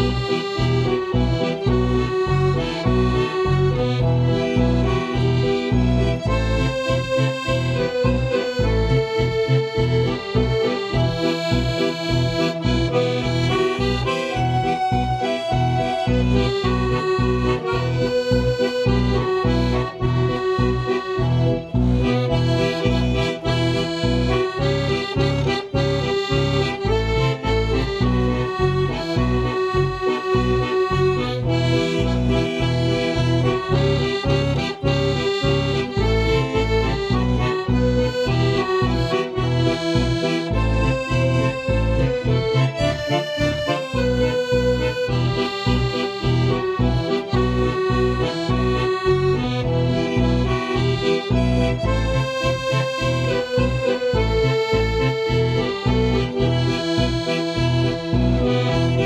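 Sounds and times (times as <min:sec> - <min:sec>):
accordion bass and chords: 0:00.0 - 0:59.0
accordion melody: 0:00.0 - 0:59.0.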